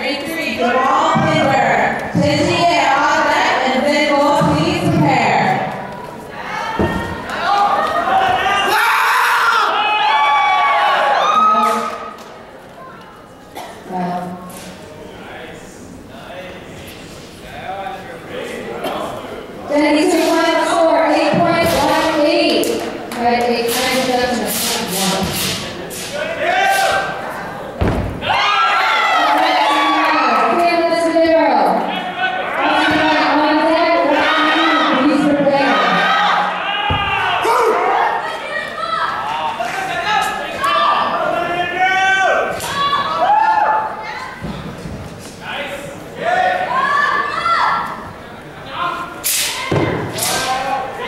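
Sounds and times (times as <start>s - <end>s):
heavy stomp thud: 27.8s - 28.3s, 36.9s - 37.3s.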